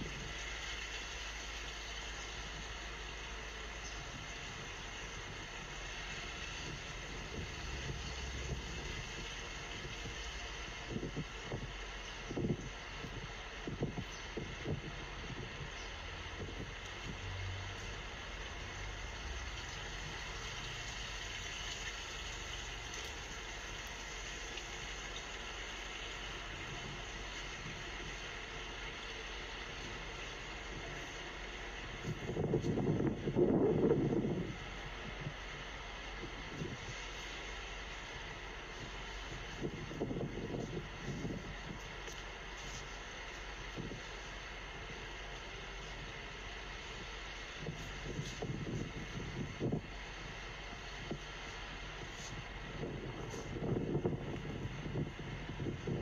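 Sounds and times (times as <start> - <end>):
city background noise: 0.0 - 56.0
wind buffeting microphone: 4.1 - 21.0, 24.4 - 56.0.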